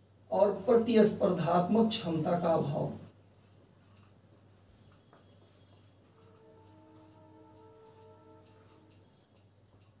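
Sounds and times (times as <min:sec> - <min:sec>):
marker pen writing on whiteboard: 0:00.4 - 0:10.0.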